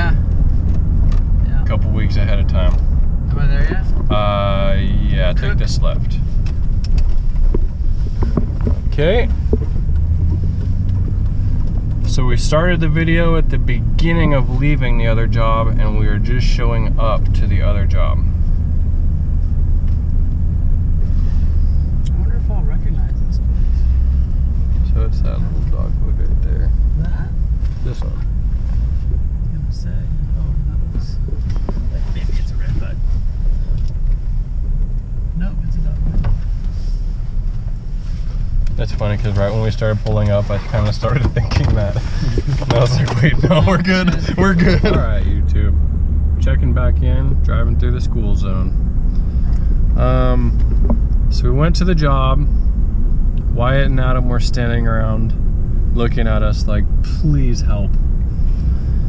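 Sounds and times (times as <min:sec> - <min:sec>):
road noise: 0:00.0 - 0:59.0
truck engine and tyres rumbling: 0:00.0 - 0:59.0.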